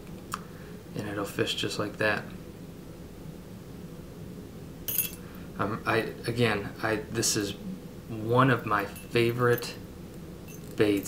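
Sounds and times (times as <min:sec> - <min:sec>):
metallic clink with ringing: 0:04.9 - 0:05.2, 0:10.5 - 0:11.0.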